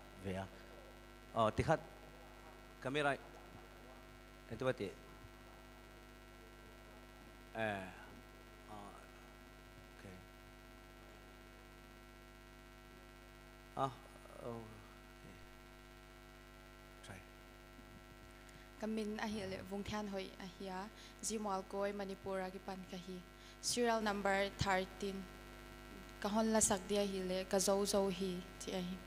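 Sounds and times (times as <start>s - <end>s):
electrical mains hum: 0.0s - 29.0s.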